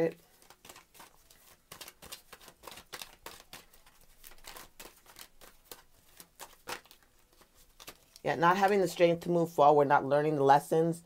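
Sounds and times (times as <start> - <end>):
cards being shuffled: 0.1 - 8.8.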